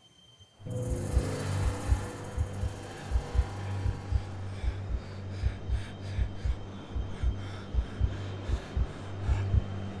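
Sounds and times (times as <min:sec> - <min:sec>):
low drone: 0:00.6 - 0:10.0
deep heartbeat-like thumps: 0:01.0 - 0:10.0.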